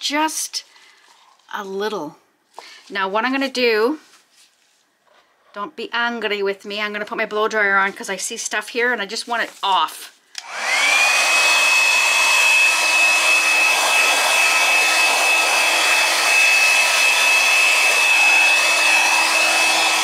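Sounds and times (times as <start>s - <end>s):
blow dryer motor whine: 10.4s - 20.0s.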